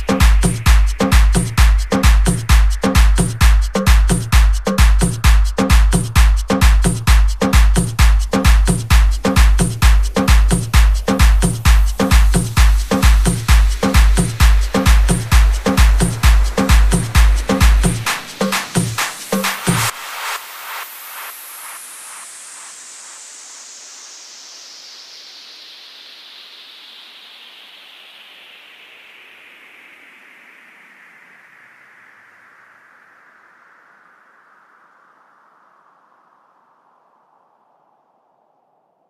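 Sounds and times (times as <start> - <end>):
faint echoing dance beats: 0.0 - 21.3
hiss sliding down in pitch: 18.1 - 28.8.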